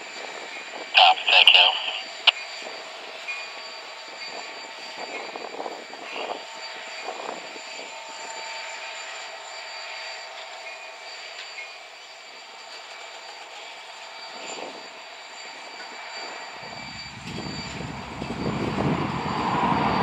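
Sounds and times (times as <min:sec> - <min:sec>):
freight train wheels rumbling: 0:16.7 - 0:20.0.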